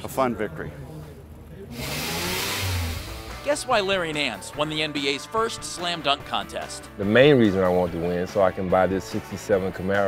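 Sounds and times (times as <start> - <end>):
car engine rumbling past: 1.7 - 3.7
loud rushing hiss: 1.8 - 3.5.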